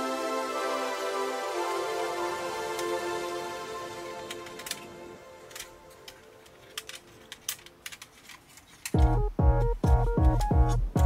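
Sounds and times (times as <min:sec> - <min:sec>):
synth music: 0:00.0 - 0:06.7, 0:09.0 - 0:11.0
plastic toy clicks and snaps: 0:04.2 - 0:09.1.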